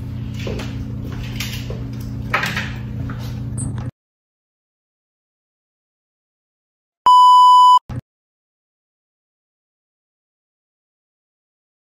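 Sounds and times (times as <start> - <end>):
loud electronic beep: 7.1 - 7.8.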